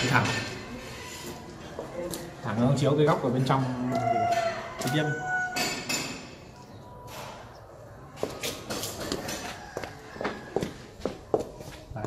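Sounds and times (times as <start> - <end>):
footsteps on pavement: 8.2 - 12.0.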